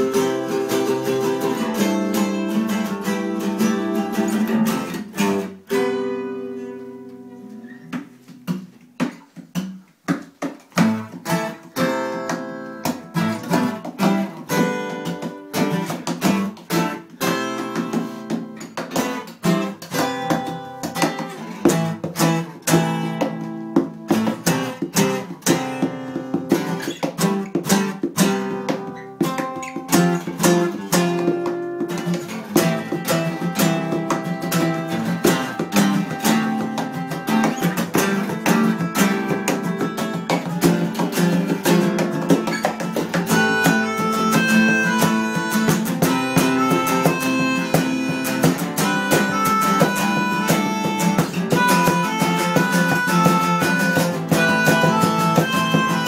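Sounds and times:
acoustic guitars playing: 0.0s - 56.0s.

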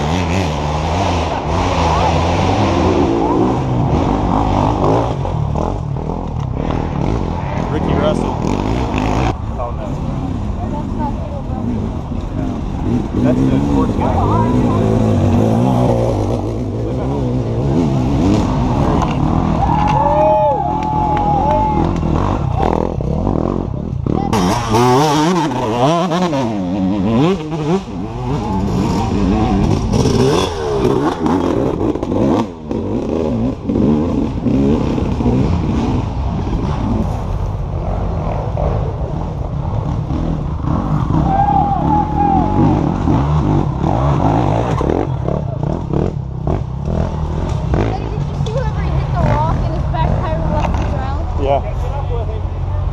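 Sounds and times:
motorcycle engines revving: 0.0s - 52.9s.

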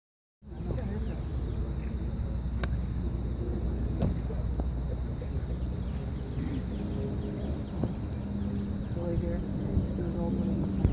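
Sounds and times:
background murmur: 0.4s - 10.9s
wind: 0.4s - 10.9s.

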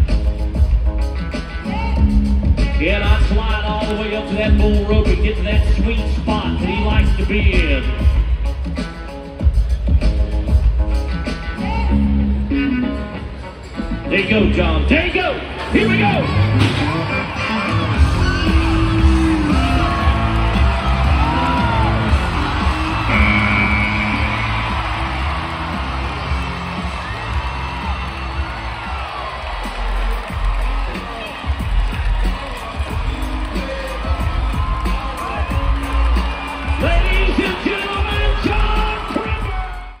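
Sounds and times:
loud pop music over loudspeakers: 0.0s - 40.0s
crowd whooping and yelling: 15.6s - 40.0s.

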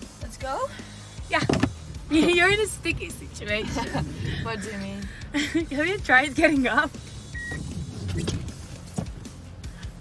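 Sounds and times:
low rumble: 1.9s - 8.7s.

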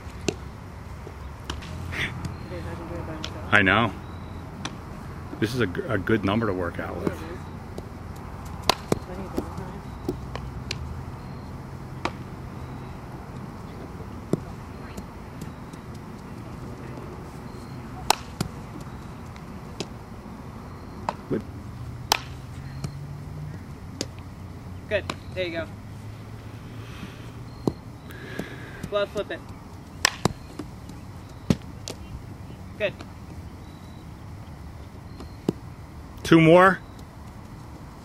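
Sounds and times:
bat hitting softball: 7.0s - 10.9s, 12.0s - 12.3s, 18.0s - 19.0s, 22.0s - 23.0s, 30.0s - 32.0s.

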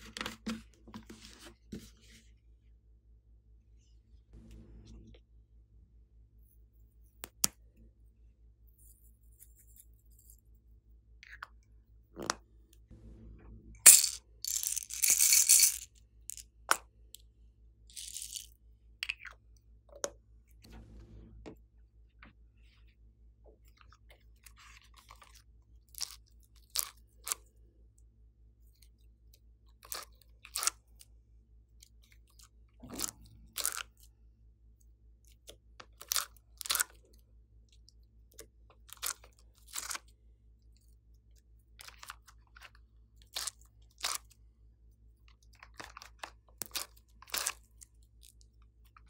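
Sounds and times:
clay handling sounds: 13.9s - 16.8s.

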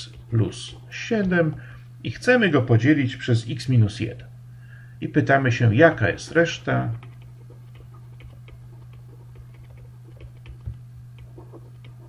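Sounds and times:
steady low hum: 0.0s - 12.0s
stylus tapping on tablet: 7.0s - 12.0s.

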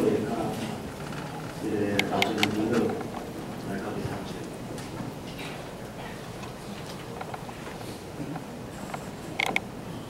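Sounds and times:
wooden furniture creaks and clicks: 0.6s - 3.3s, 6.4s - 9.7s.

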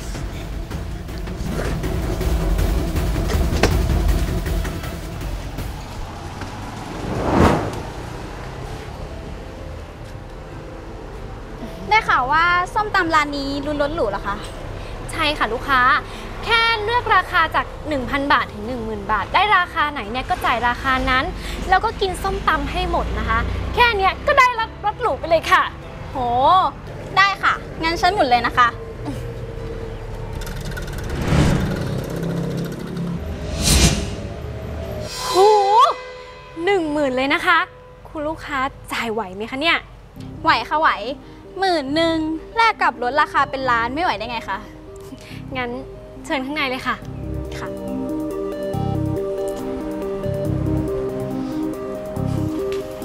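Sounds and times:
dramatic background music: 0.0s - 7.2s, 40.0s - 53.0s
short whoosh: 6.0s - 8.4s, 33.3s - 35.2s.

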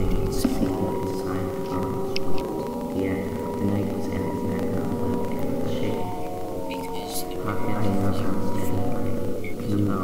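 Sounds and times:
ambient droning music: 0.0s - 10.0s.

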